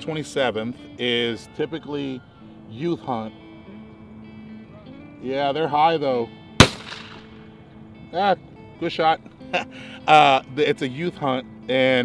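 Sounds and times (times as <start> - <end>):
shotgun shot: 6.6 - 7.5.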